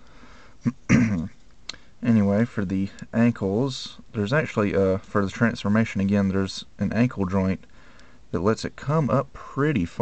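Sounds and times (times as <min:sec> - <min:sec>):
man clearing his throat: 0:00.6 - 0:01.4.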